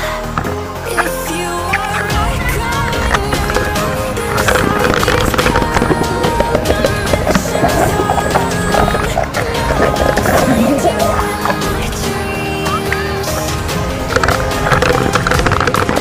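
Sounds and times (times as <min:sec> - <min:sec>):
background music: 0:00.0 - 0:16.0
water churning and splashing: 0:00.2 - 0:16.0.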